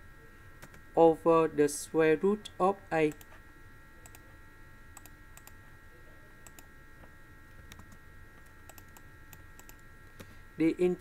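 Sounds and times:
faint electrical whine: 0.0s - 11.0s.

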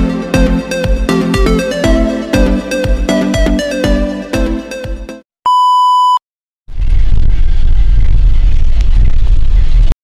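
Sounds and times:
electronic dance music: 0.0s - 5.2s
high electronic beep: 5.5s - 6.2s
wind noise on microphone: 6.7s - 10.0s.

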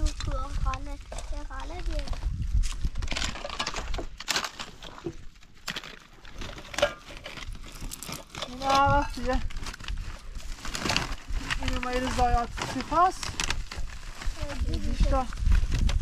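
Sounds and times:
child's voice: 0.0s - 2.2s, 14.3s - 15.4s
plastic sack crinkling: 0.4s - 16.0s.

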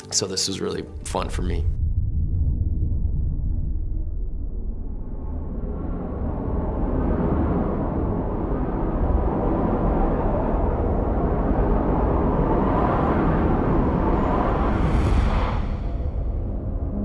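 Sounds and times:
deep rumble: 0.8s - 17.0s
rushing wind-like noise: 0.9s - 17.0s.

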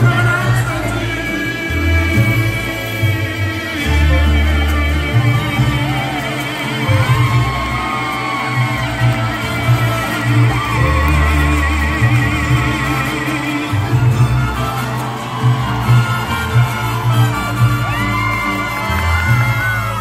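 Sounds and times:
mariachi band playing: 0.0s - 20.0s.

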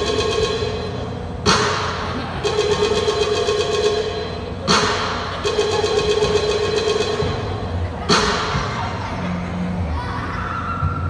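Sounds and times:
steady held tone: 0.0s - 9.1s.

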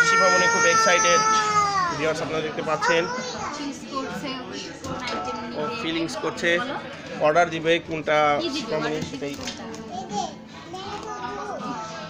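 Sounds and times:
young children chattering: 2.7s - 7.0s, 9.8s - 12.0s.

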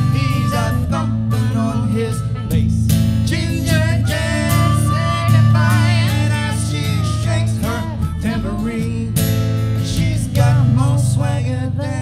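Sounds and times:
upright bass: 0.0s - 12.0s
woman and men singing: 0.0s - 12.0s.

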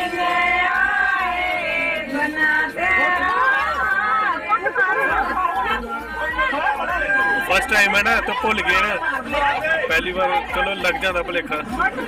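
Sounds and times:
people talking overlapping: 0.0s - 12.0s.

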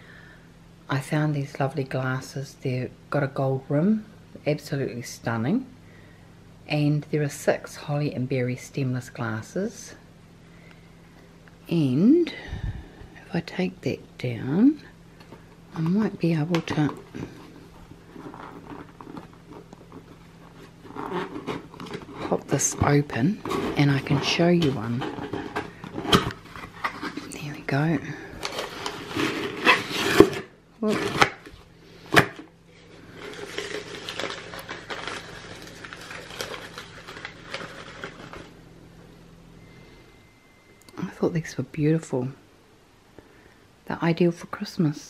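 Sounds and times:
packing paper rustling and crinkling: 15.4s - 38.6s.

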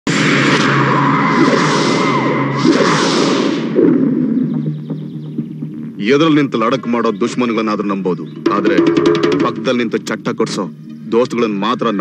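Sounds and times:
loud rushing noise: 0.1s - 4.4s.

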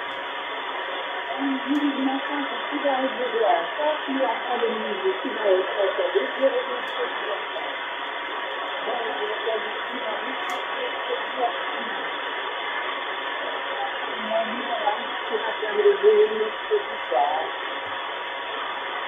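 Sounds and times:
constant tone: 0.0s - 19.0s
radio hiss: 0.0s - 19.0s
faint broken radio voice: 0.5s - 7.8s, 8.6s - 17.7s.

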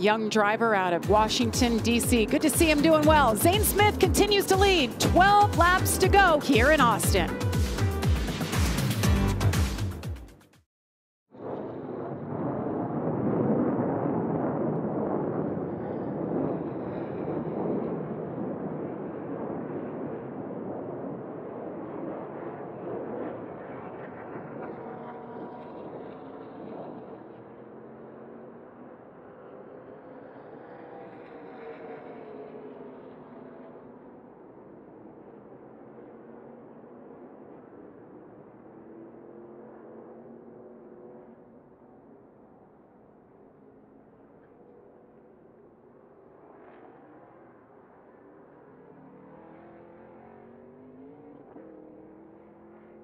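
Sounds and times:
race truck engines passing by: 0.0s - 7.3s, 15.7s - 42.2s, 43.4s - 53.0s.

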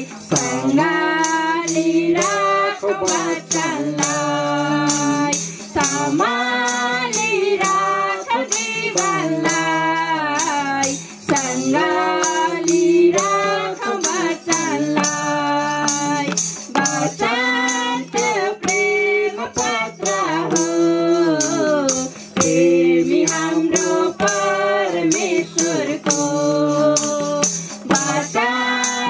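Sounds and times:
tambourine beat: 0.0s - 29.0s
women singing into microphone: 0.0s - 29.0s.

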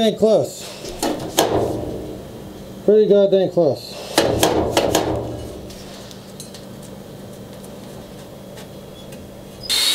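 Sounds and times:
knocks on sheet metal: 1.0s - 2.3s, 4.2s - 5.7s.

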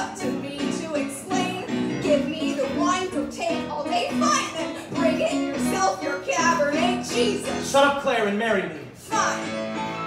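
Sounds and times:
woman singing: 0.0s - 7.5s
keyboard accompaniment: 0.0s - 8.4s, 9.1s - 10.0s.

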